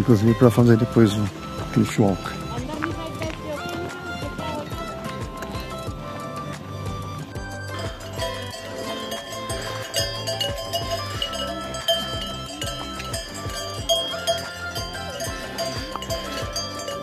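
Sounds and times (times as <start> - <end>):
background music: 0.0 - 17.0
cowbells clanging: 0.0 - 17.0.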